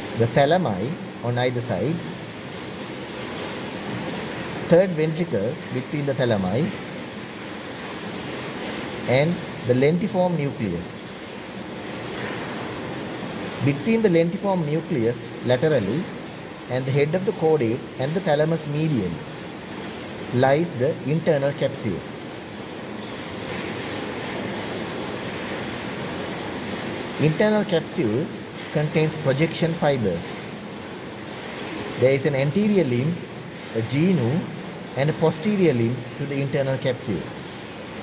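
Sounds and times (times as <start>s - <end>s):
steady background hiss: 0.0s - 38.0s.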